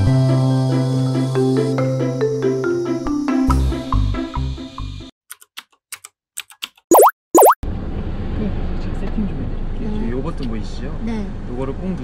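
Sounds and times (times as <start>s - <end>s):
rising bloop tones: 6.9s - 7.6s.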